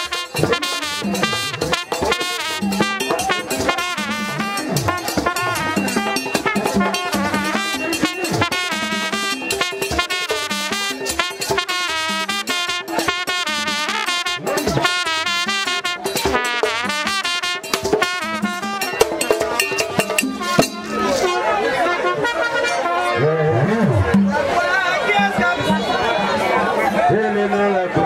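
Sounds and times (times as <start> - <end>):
steady drumming: 0.0 - 21.4
trumpet melody: 0.0 - 24.1.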